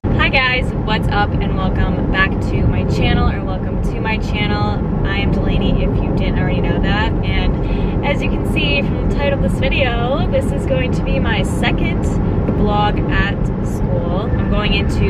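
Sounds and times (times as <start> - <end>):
car engine and road rumble: 0.0 - 15.0
woman talking: 0.2 - 15.0.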